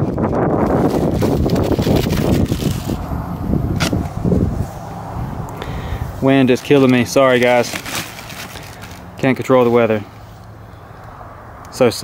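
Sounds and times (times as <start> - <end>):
wind buffeting microphone: 0.0 - 7.7
bubble wrap crinkling: 0.7 - 3.0, 6.6 - 9.1
sharp crackle: 6.7 - 9.0.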